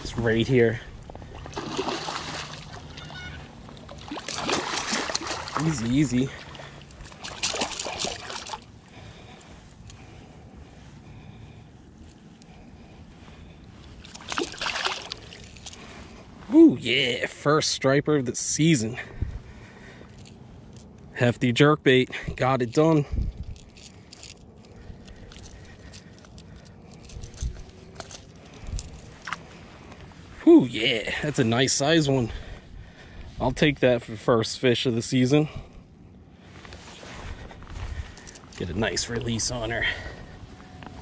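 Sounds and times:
fish splashing in water: 1.3s - 8.7s, 14.0s - 15.5s.

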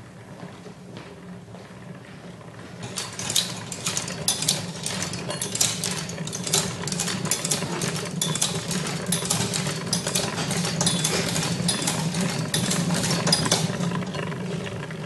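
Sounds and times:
mechanism clicking and rattling: 2.8s - 14.8s.

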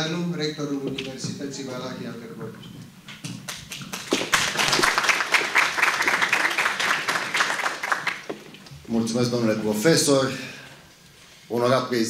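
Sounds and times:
audience applause: 3.5s - 8.6s.

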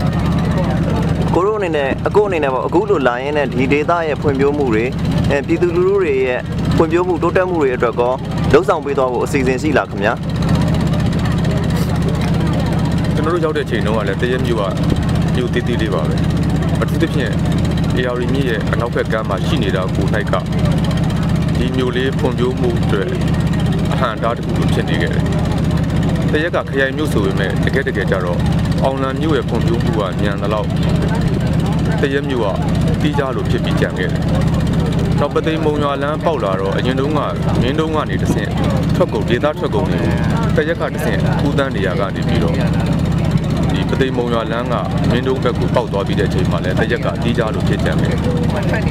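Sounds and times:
motorboat engine droning: 0.0s - 48.9s
man talking: 0.2s - 10.2s, 13.1s - 20.9s, 21.5s - 25.4s, 26.3s - 48.9s.

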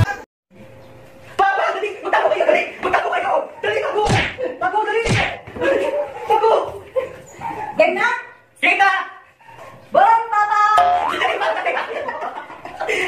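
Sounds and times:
sharp smack: 4.1s - 4.4s, 5.1s - 5.4s.

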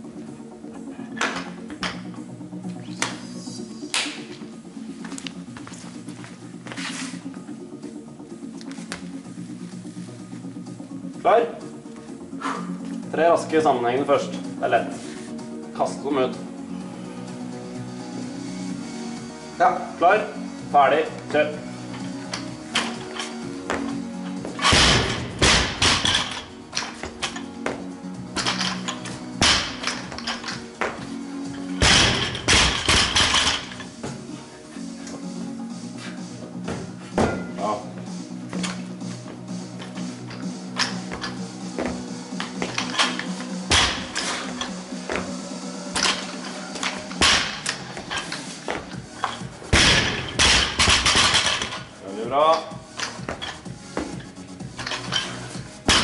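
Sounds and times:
background music: 0.0s - 56.0s
barbell crashing onto platform: 24.6s - 26.5s, 29.4s - 30.0s, 31.8s - 33.7s, 43.7s - 44.2s, 47.2s - 47.8s, 49.8s - 51.8s.

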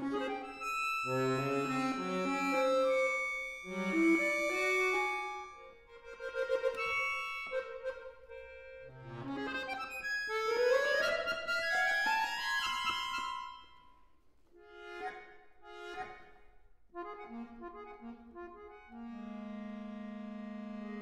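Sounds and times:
solo accordion playing: 0.0s - 13.7s, 14.6s - 21.0s.

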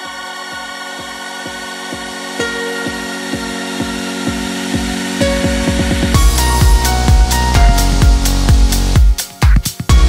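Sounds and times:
sustained synth chords: 0.0s - 9.2s
electronic dance music: 0.0s - 10.0s
kick drum pulsing: 0.0s - 10.0s.

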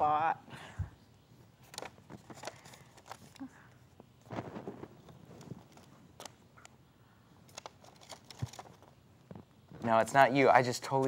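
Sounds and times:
paper rustling: 1.6s - 3.5s, 4.2s - 6.4s, 7.5s - 9.4s.

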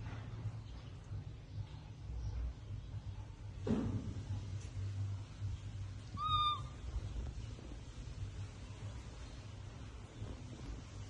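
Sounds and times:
infant monkey high-pitched call: 6.1s - 6.8s.

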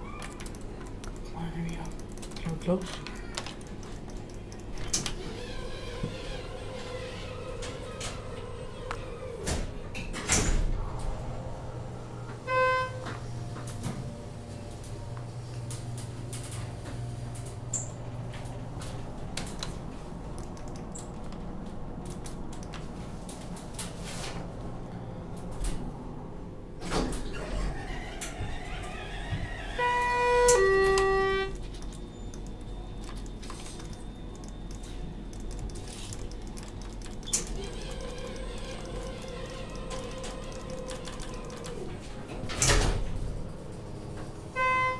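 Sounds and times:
elevator low hum: 0.0s - 44.9s.

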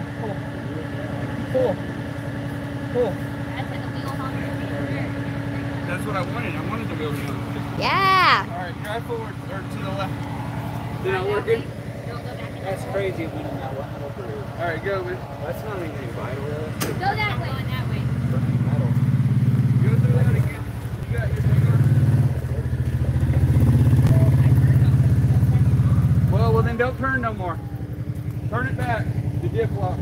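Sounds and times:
utility vehicle engine running: 0.0s - 30.0s.

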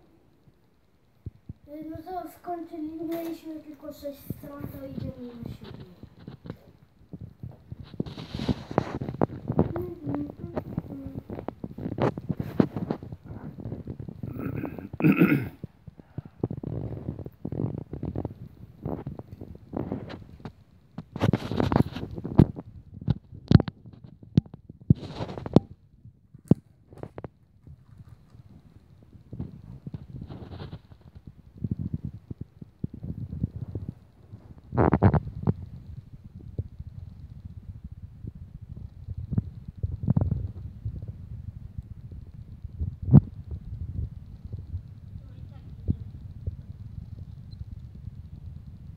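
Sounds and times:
microphone handling rumble: 4.3s - 48.9s.

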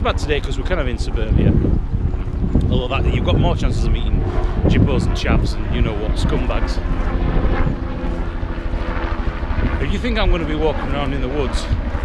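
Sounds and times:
helicopter engine and rotor drone: 0.0s - 12.0s
wind on microphone: 0.0s - 12.0s.

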